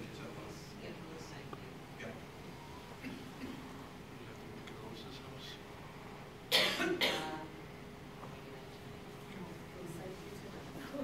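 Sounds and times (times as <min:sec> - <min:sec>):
person coughing: 0:06.5 - 0:07.4.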